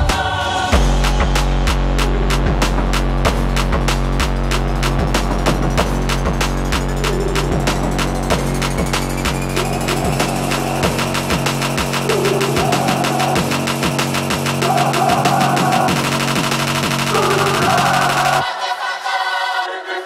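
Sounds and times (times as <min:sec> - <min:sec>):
electronic trap music: 0:00.0 - 0:20.0.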